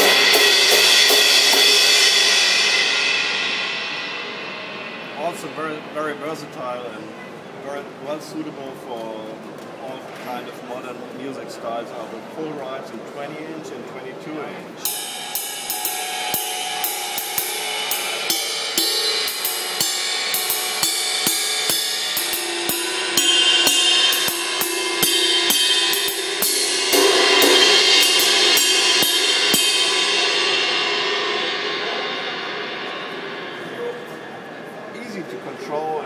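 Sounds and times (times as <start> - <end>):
ride cymbal struck with drumstick: 0.0 - 7.6, 14.7 - 36.0.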